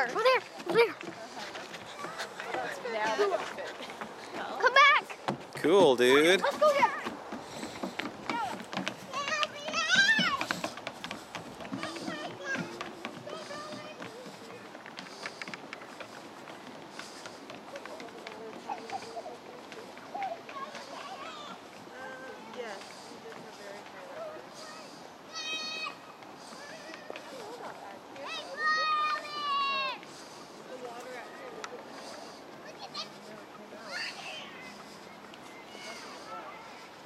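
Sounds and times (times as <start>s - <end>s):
children running on wooden boardwalk: 0.0s - 37.0s.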